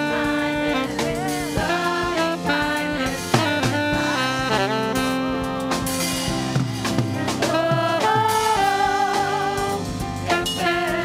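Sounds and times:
woman singing: 0.0s - 4.7s, 7.2s - 11.0s
electric keyboard chords: 0.0s - 11.0s.

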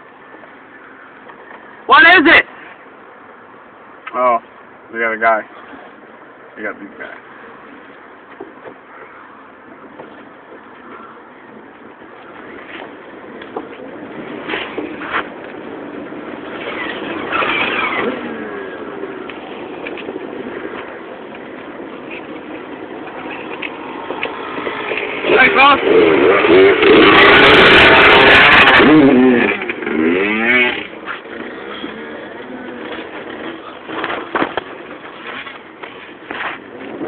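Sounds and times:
car engine running: 9.0s - 37.0s.

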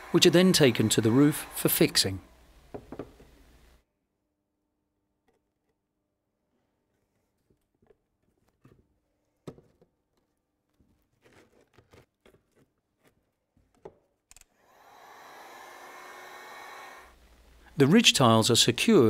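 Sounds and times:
hot air gun blowing: 0.0s - 2.1s, 14.6s - 17.2s
knocks and taps of bench work: 2.7s - 3.3s.

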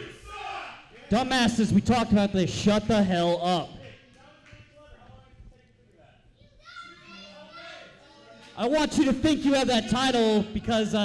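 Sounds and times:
child shouting: 6.4s - 8.1s.

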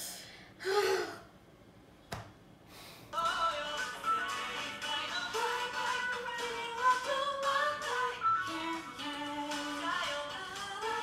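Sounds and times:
woman gasping: 0.0s - 1.3s.

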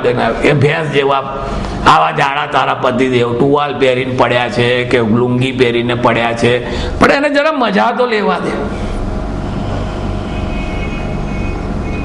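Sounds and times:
steady hum and hiss: 0.0s - 12.0s.

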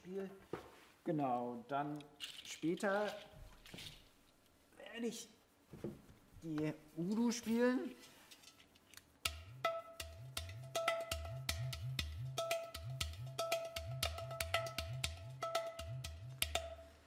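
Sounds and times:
clay pot drum bass notes: 9.2s - 17.0s.

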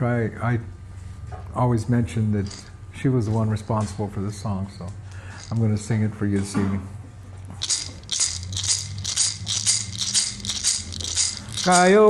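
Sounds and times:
hand rattle shaken: 2.4s - 2.7s, 5.2s - 5.7s, 7.6s - 12.0s.

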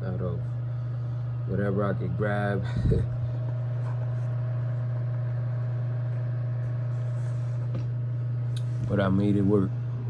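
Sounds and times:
room heater humming: 0.0s - 10.0s.

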